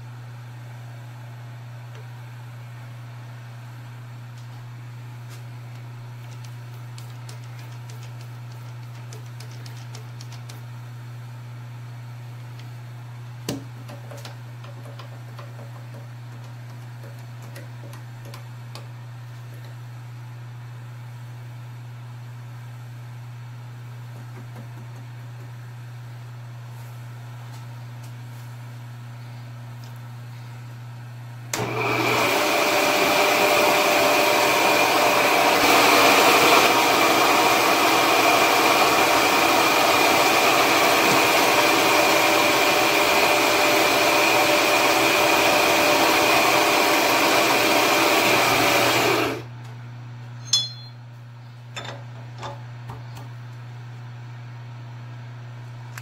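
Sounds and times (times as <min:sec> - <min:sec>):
mill spindle whining: 0:31.5 - 0:49.5
low steady hum: 0:49.5 - 0:56.0.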